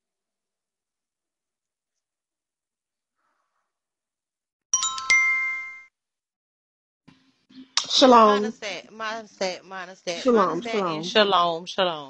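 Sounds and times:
electronic bell-like chime: 4.8s - 5.9s.

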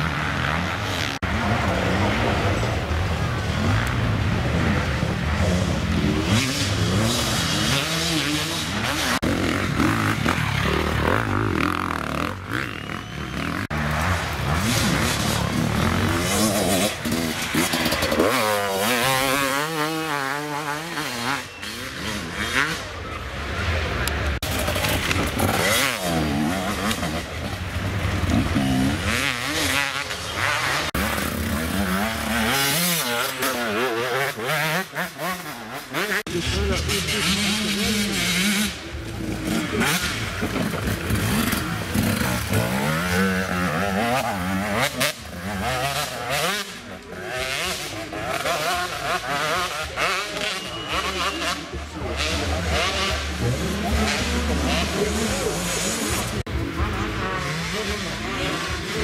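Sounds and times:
motorcycles revving past: 0.0s - 59.0s
spectators' voices: 1.2s - 59.0s.

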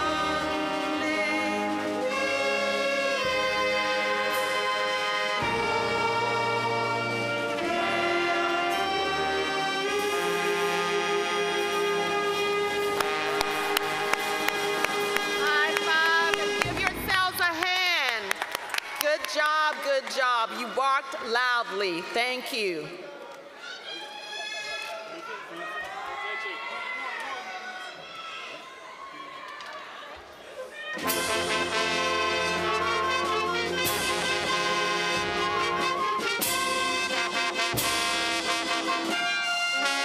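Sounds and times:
lone voice singing: 0.0s - 5.0s
band and singers performing: 0.0s - 17.2s, 31.0s - 40.0s
brass: 0.0s - 17.5s, 31.0s - 40.0s.

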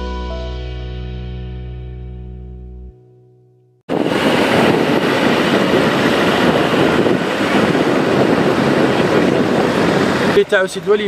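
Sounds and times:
heavy construction machinery running: 3.9s - 11.0s.

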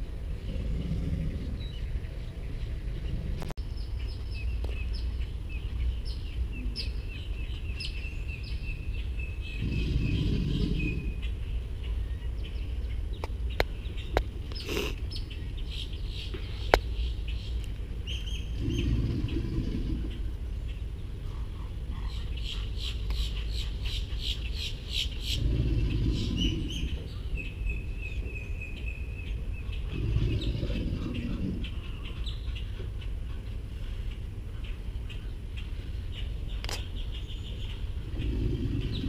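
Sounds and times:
alligators bellowing: 0.3s - 2.2s, 9.4s - 11.3s, 18.3s - 20.5s, 25.2s - 27.6s, 29.7s - 32.3s, 37.9s - 39.0s
birds calling: 0.3s - 39.0s.

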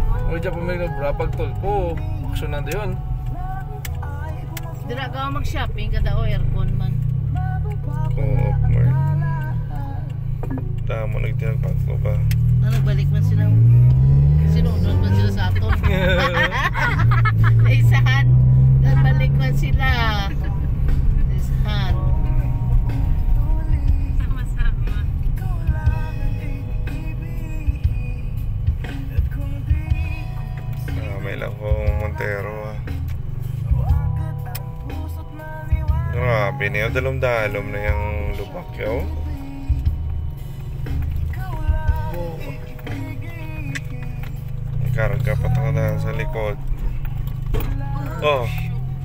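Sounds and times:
car driving rumble from inside: 0.0s - 49.0s
road noise: 0.0s - 49.0s
voices: 10.5s - 27.0s, 41.4s - 49.0s.

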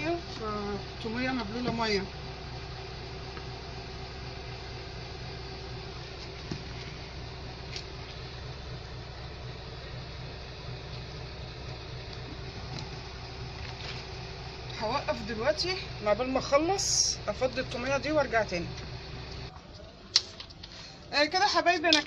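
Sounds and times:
background hum: 0.0s - 22.0s.

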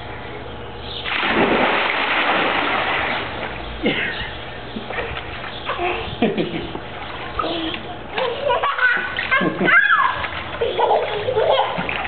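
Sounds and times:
loud splash into pool: 1.0s - 3.6s
water spray and crashing: 1.1s - 3.4s.

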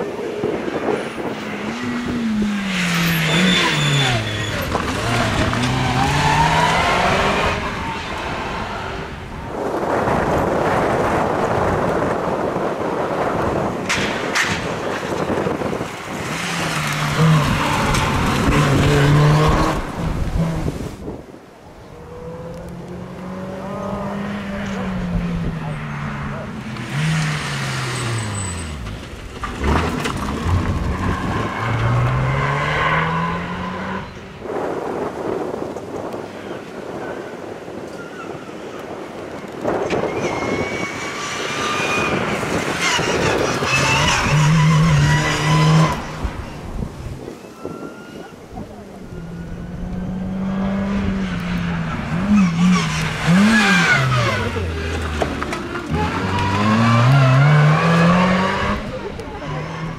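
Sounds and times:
rally car engines revving: 0.0s - 21.2s, 21.9s - 59.9s.

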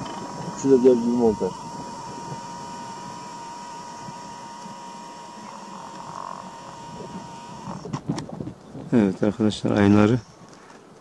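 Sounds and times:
faint high-pitched whine: 0.0s - 7.9s.

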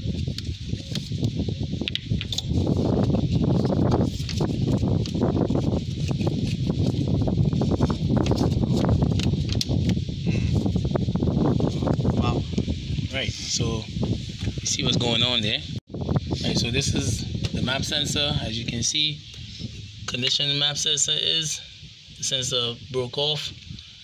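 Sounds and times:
rustling and scraping handling: 0.2s - 10.8s.

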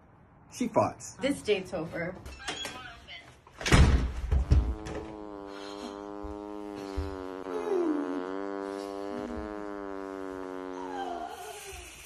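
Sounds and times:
long buzzing fart: 4.1s - 12.0s.

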